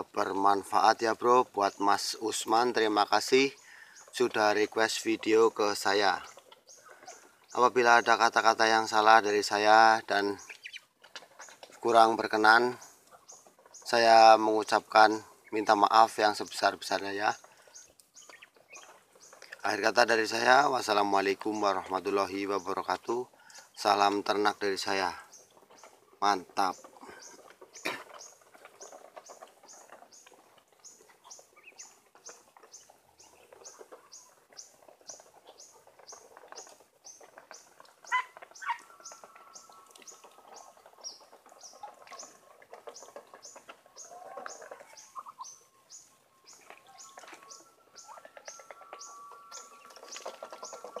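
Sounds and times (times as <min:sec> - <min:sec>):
small bird chirping: 0:05.7 - 0:51.0.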